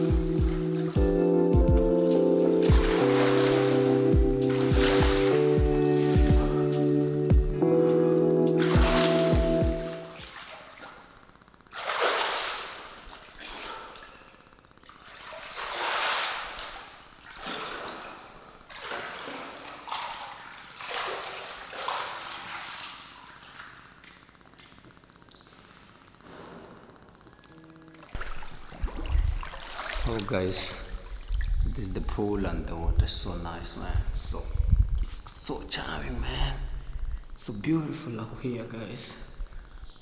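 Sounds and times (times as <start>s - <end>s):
pool water sloshing and splashing: 0.0s - 1.1s, 2.4s - 6.4s, 8.5s - 25.0s, 28.0s - 31.8s
music: 0.0s - 10.2s.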